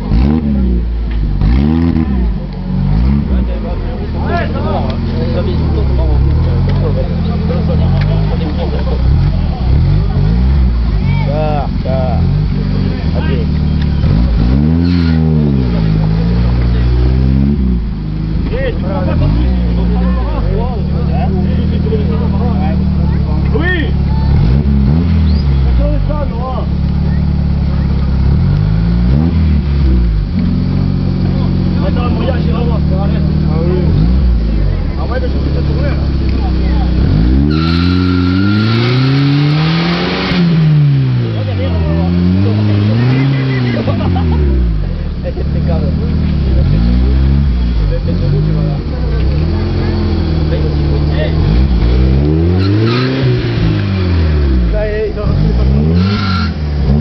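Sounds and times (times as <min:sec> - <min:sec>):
engine revving: 0:00.0 - 0:57.0.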